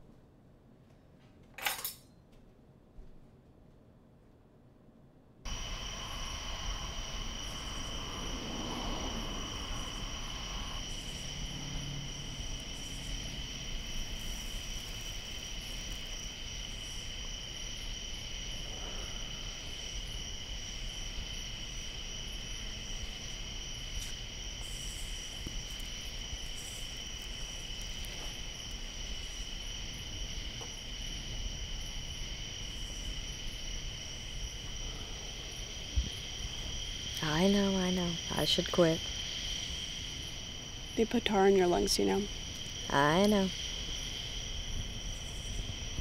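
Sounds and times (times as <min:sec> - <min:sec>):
crickets trilling: 0:05.5 - 0:46.0.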